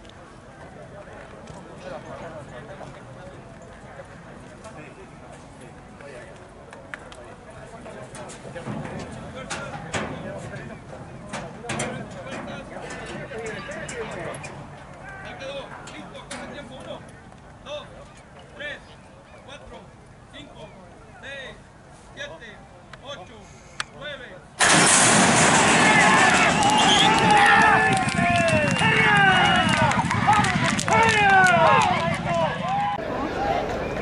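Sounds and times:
people talking in background: 0.0 - 24.6, 29.7 - 34.0
racehorses rushing from starting gate: 24.6 - 34.0.

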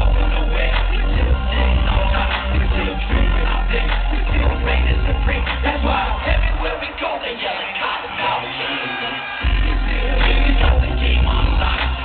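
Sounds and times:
heavy bass line: 0.0 - 7.0, 9.4 - 12.0
loud live concert music: 0.0 - 12.0.

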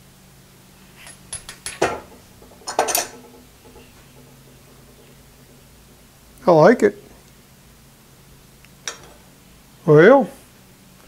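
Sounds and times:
steel rod clicking and clinking: 1.0 - 5.6.

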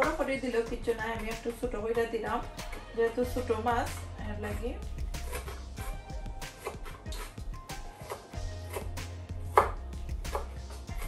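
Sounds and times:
knife chopping on wooden board: 5.1 - 11.0.

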